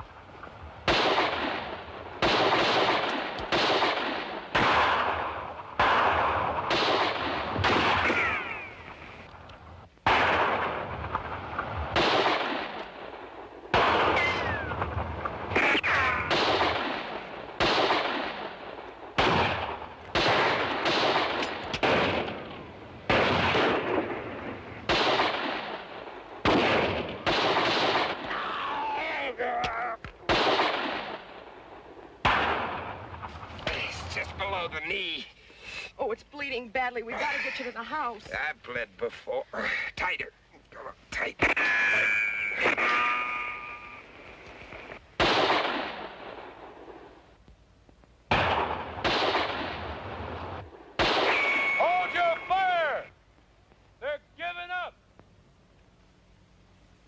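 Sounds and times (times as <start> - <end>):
gunshots with echo: 0.8 - 8.7, 10.0 - 22.5, 23.1 - 28.3, 30.3 - 31.4, 32.2 - 34.6, 45.2 - 46.5, 48.3 - 52.5.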